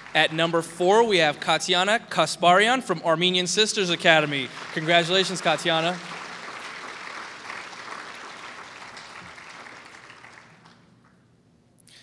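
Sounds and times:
audience applause: 0:00.0 - 0:01.5, 0:03.6 - 0:10.9.

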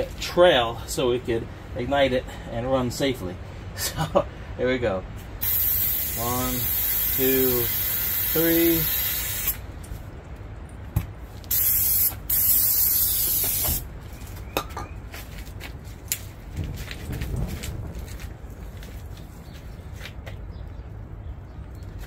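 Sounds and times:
aerosol can spraying: 0:05.4 - 0:09.6, 0:11.5 - 0:13.8.

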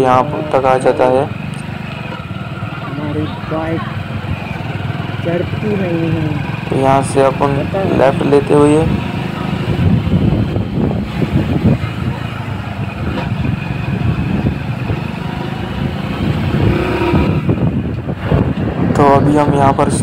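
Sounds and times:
motorcycle engine running: 0:00.0 - 0:20.0
wind rushing over microphone: 0:00.0 - 0:20.0.

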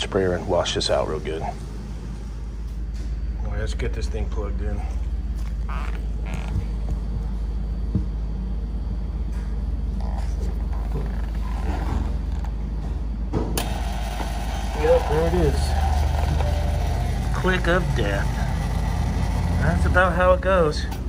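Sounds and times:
cooler humming loudly: 0:00.0 - 0:21.0
low steady hum: 0:00.0 - 0:21.0.

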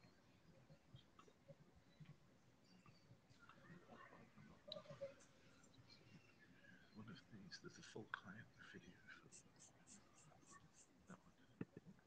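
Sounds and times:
faint hushed talk: 0:02.7 - 0:12.0.

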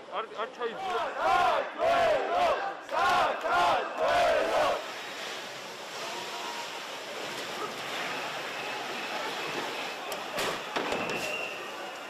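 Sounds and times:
crowd chanting: 0:00.8 - 0:04.9.

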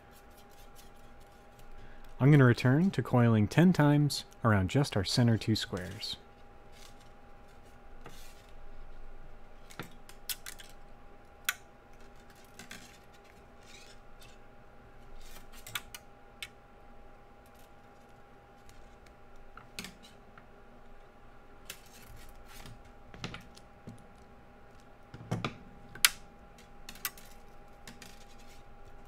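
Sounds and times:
faint steady hum: 0:00.0 - 0:29.0.

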